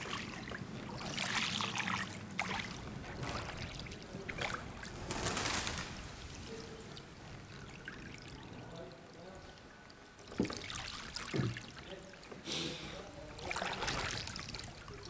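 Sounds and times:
oar splashing in water: 0:00.0 - 0:05.0, 0:10.2 - 0:12.4, 0:13.3 - 0:15.0.

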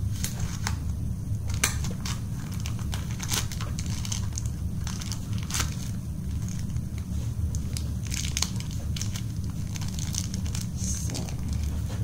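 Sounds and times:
steady low rumble: 0:00.0 - 0:12.0
plastic packaging crinkling: 0:00.2 - 0:12.0.

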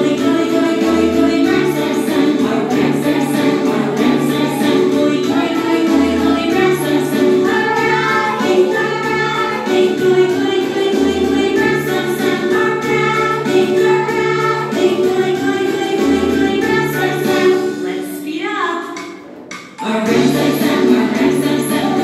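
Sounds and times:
children singing: 0:00.0 - 0:17.8, 0:19.8 - 0:22.0
children's song with bass line: 0:00.0 - 0:22.0.

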